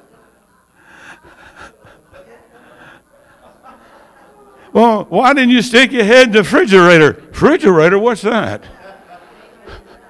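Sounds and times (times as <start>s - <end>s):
murmur of voices: 0.0s - 10.0s
people chuckling: 0.9s - 4.5s, 8.6s - 10.0s.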